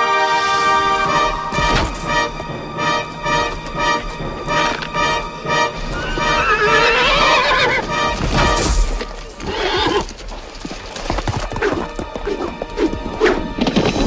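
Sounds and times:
film music score: 0:00.0 - 0:14.0
horse whinnying: 0:05.8 - 0:07.9, 0:09.4 - 0:10.2.

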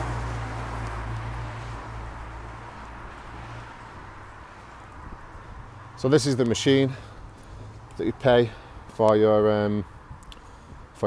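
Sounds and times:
tyres hissing on wet road: 0:00.0 - 0:05.9
vehicle engine hum: 0:00.0 - 0:09.0.

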